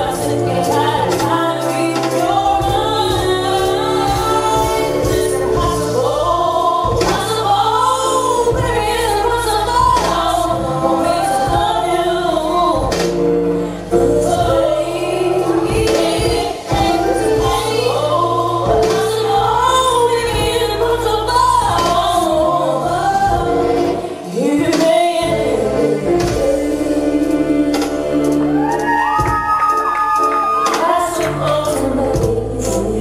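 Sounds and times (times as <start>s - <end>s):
backing music with bass and beat: 0.0s - 33.0s
woman singing into a microphone: 0.0s - 33.0s.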